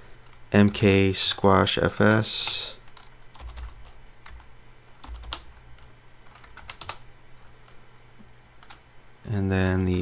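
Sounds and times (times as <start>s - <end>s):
keyboard typing: 2.4s - 7.0s, 8.6s - 8.8s.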